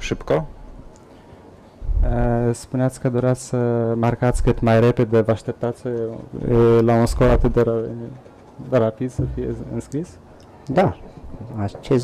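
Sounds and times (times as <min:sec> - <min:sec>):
man talking over microphone: 0:02.1 - 0:11.0.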